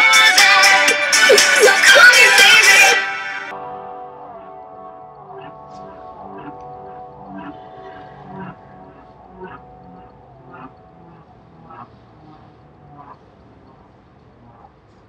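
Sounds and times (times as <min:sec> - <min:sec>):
pop song playing: 0:00.0 - 0:04.1.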